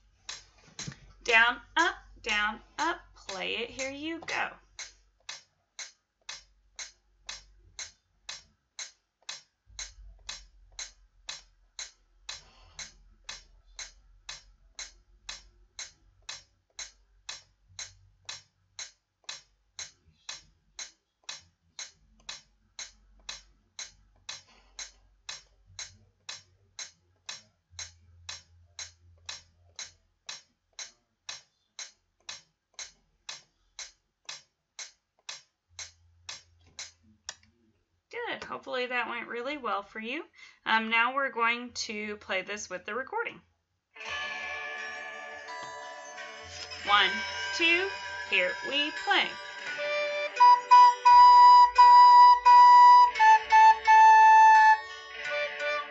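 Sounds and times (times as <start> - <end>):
metronome ticking: 0.2 - 37.4, 46.6 - 55.9.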